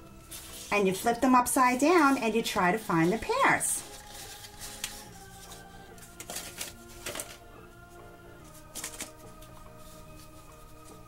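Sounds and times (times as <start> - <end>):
quiet background music: 0.0 - 11.0
paper cards rustling: 0.2 - 7.4, 8.4 - 11.0.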